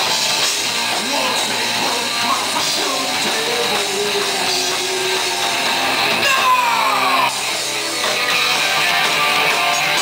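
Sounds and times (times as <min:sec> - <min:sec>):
electric guitars: 0:00.0 - 0:10.0
live rock band playing: 0:00.0 - 0:10.0.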